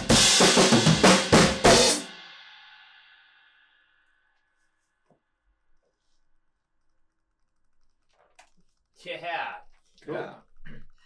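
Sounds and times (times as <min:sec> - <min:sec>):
faint laptop keyboard typing: 0:05.7 - 0:11.0.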